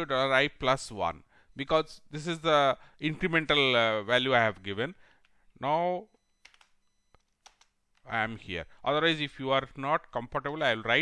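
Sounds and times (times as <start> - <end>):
computer keyboard keystrokes: 6.4 - 6.8, 7.4 - 7.7.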